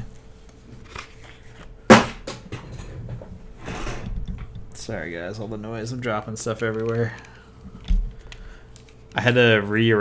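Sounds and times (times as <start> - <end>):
objects knocking and rattling: 1.9 - 4.8.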